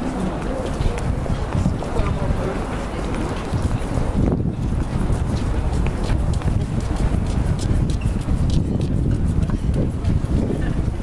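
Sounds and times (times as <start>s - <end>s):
footsteps on hard paving: 0.0s - 11.0s
wind rumble on microphone: 0.0s - 11.0s.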